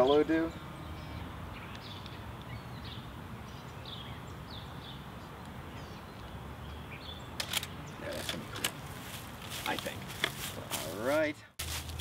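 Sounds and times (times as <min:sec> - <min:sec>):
small birds chirping: 0:00.0 - 0:11.3
camera shutter double click: 0:07.4 - 0:07.8.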